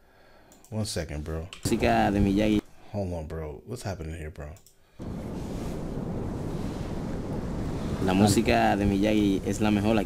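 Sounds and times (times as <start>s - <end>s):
wind: 5.0s - 9.7s
ocean surf: 5.0s - 10.0s.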